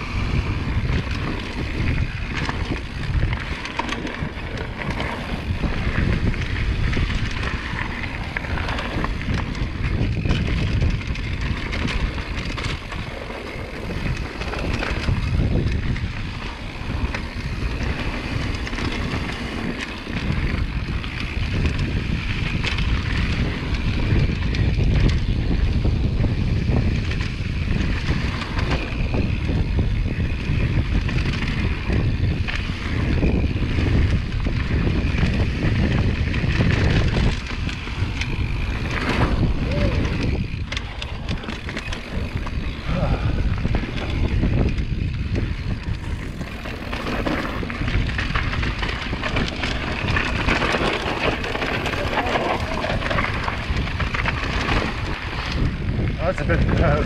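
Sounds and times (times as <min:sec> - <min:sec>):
bike rattling over bumps: 0:00.0 - 0:57.0
wind buffeting microphone: 0:00.0 - 0:57.0
tyres rolling over dirt: 0:00.6 - 0:24.7, 0:36.2 - 0:55.9.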